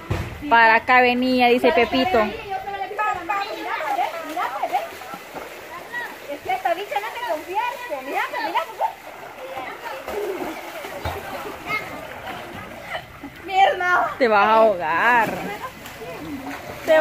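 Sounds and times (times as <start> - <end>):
water splashing in pool: 0.0 - 17.0
girls chattering: 1.5 - 17.0.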